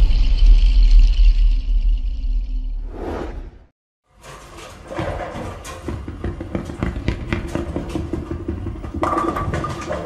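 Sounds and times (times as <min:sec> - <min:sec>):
bowling balls rolling: 0:04.7 - 0:10.0.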